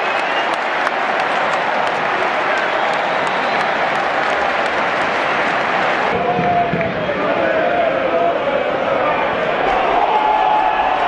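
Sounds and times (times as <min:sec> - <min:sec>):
crowd clapping: 0:00.0 - 0:07.2
stadium crowd cheering: 0:00.0 - 0:11.0.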